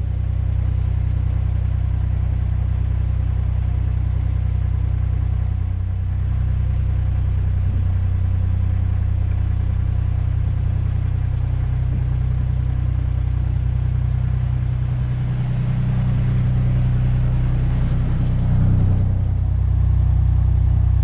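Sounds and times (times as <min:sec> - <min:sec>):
boat diesel engine droning: 0:00.0 - 0:21.0.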